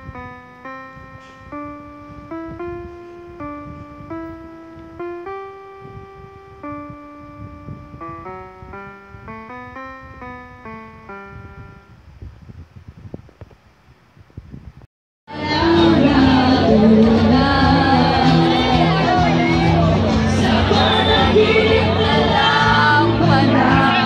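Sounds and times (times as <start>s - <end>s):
electronic keyboard melody: 0.0s - 13.0s, 15.3s - 24.0s
loud live music with singing: 15.3s - 24.0s.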